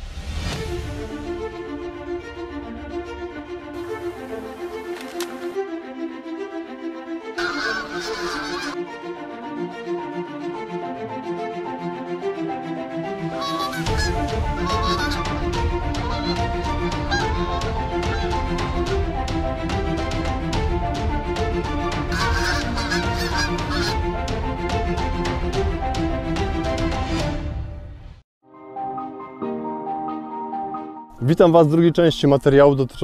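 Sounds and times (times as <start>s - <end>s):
background music: 0.0s - 33.0s
geese honking: 7.4s - 8.8s, 13.3s - 18.9s, 22.0s - 24.0s.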